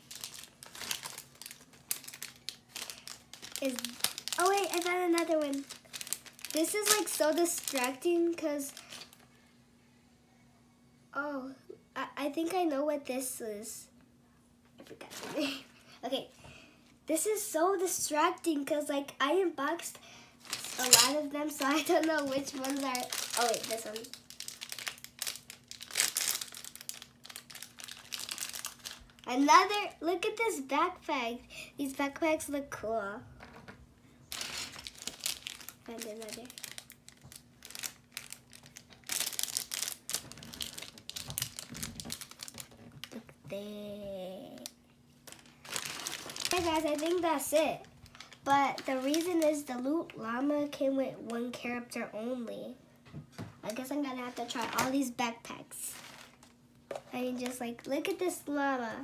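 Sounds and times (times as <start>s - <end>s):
plastic bags crinkling: 0.0s - 9.3s, 20.4s - 29.5s, 34.3s - 43.2s, 45.2s - 49.8s, 55.7s - 57.6s
person speaking: 3.4s - 5.8s, 20.6s - 24.1s, 35.8s - 36.6s, 46.4s - 50.6s.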